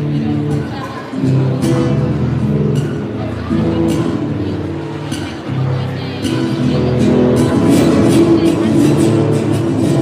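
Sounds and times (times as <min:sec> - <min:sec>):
guitar chords: 0:00.0 - 0:10.0.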